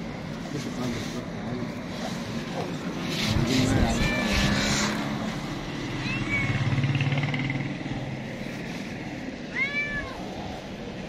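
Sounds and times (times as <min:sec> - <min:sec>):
cat meowing: 0:03.4 - 0:05.0, 0:05.9 - 0:06.8, 0:09.4 - 0:10.7.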